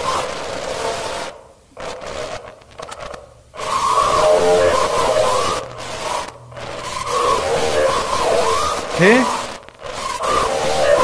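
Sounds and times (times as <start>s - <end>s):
television static hiss: 0.0s - 11.0s.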